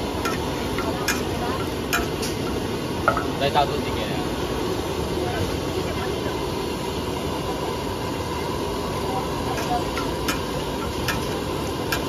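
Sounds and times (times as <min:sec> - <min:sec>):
gas burner rushing: 0:00.0 - 0:12.0
noodles frying in wok: 0:00.0 - 0:12.0.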